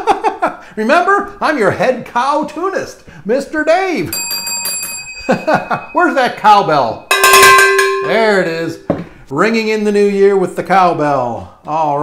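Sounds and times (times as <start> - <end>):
small bell ringing rapidly: 4.1 - 8.5.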